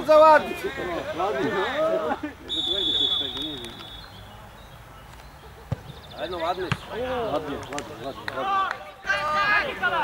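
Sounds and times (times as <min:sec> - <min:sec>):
men talking: 0:00.0 - 0:04.6, 0:05.5 - 0:10.0
long whistle blast: 0:02.5 - 0:04.1.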